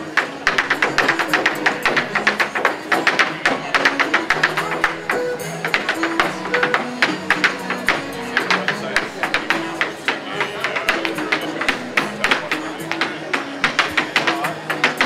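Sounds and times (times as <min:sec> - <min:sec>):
music through small speaker: 0:00.0 - 0:15.0
hard shoes tapping on wooden board: 0:00.1 - 0:15.0.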